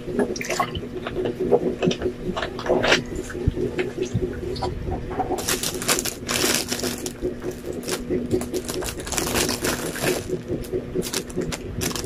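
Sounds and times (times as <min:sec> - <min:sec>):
plastic bag crinkling: 0:05.4 - 0:12.0.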